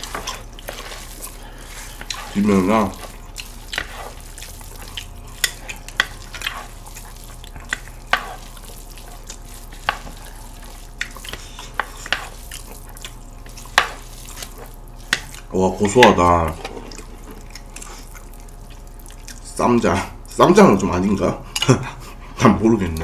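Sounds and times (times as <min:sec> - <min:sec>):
chopsticks stirring noodles in bowl: 0:00.0 - 0:20.9
close-up eating sounds: 0:00.0 - 0:23.0.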